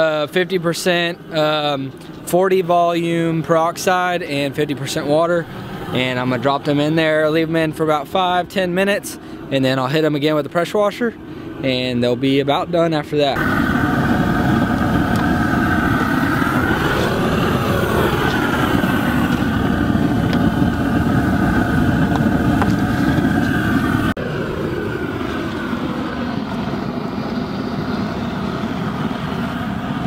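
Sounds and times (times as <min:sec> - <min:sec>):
pressure washer engine running: 0:03.5 - 0:07.6, 0:13.3 - 0:30.0.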